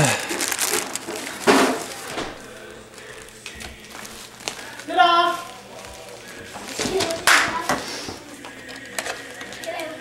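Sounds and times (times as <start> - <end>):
tissue paper rustling: 0.0 - 9.9.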